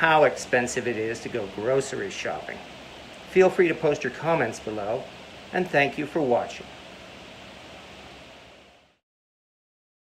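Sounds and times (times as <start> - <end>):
room hiss: 0.0 - 9.0.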